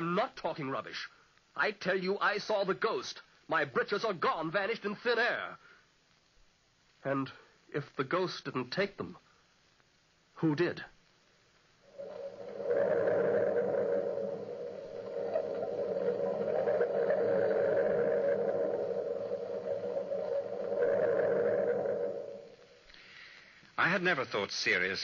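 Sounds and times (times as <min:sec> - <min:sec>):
moaning drone: 0:11.9 - 0:22.8.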